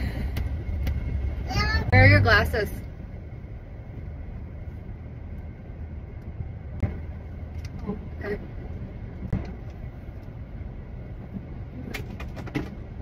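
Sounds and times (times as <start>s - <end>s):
low rumble inside car cabin: 0.0s - 13.0s.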